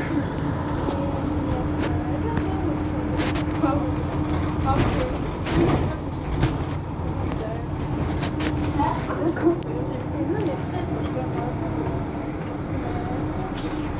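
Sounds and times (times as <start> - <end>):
bus diesel engine idling: 0.0 - 13.9.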